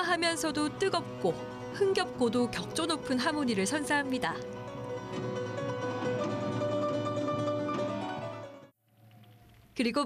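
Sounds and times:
plucked string instrument: 0:00.2 - 0:08.7.

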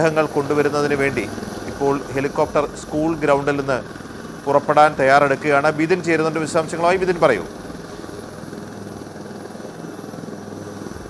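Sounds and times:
helicopter engine and rotor: 0:00.0 - 0:11.0.

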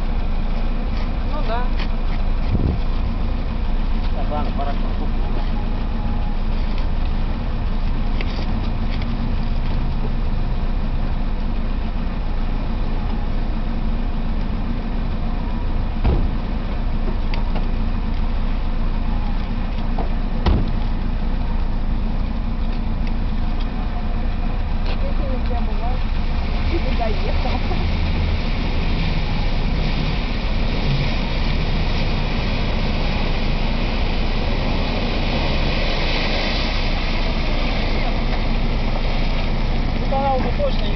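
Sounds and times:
car engine running: 0:00.0 - 0:40.9
sharp knocks: 0:16.0 - 0:16.4, 0:20.4 - 0:20.8.

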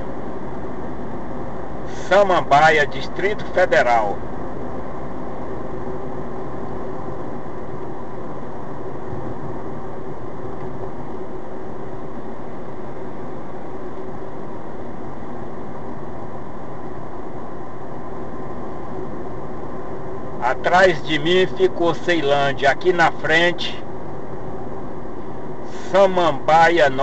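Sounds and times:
faint steady hum: 0:00.0 - 0:27.0
road and engine noise in car: 0:00.0 - 0:27.0.

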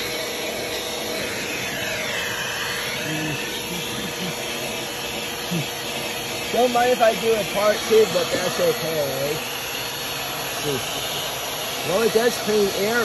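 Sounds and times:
vacuum cleaner running: 0:00.0 - 0:13.0.

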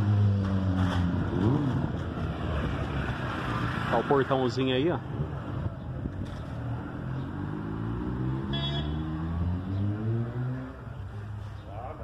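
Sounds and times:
vehicle engine speeding up: 0:07.1 - 0:10.8.

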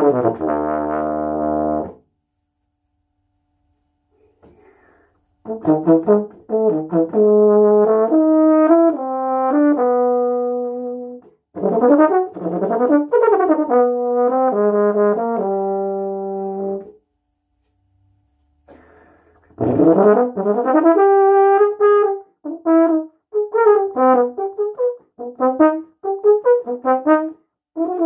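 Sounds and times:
solo euphonium playing: 0:00.0 - 0:02.0, 0:05.4 - 0:17.0, 0:19.6 - 0:28.0
player breathing: 0:04.1 - 0:05.3, 0:18.6 - 0:19.6.

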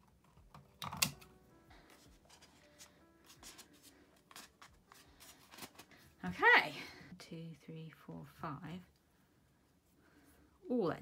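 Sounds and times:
sticks clicking and rustling: 0:00.0 - 0:06.0.

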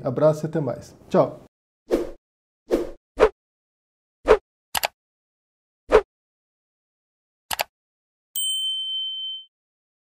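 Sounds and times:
notification bell ding: 0:08.4 - 0:09.5.

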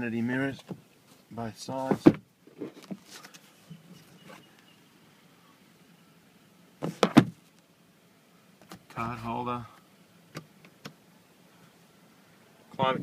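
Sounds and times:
sun visor snapping shut: 0:06.8 - 0:07.4.

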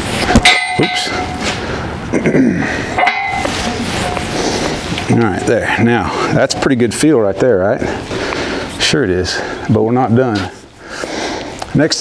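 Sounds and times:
metal pipe clanging: 0:00.2 - 0:01.6, 0:02.8 - 0:07.0.

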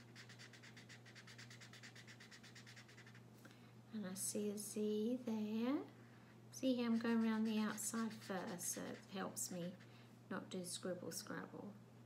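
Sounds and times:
felt-tip marker scratching on paper: 0:00.0 - 0:03.2, 0:06.9 - 0:09.8.

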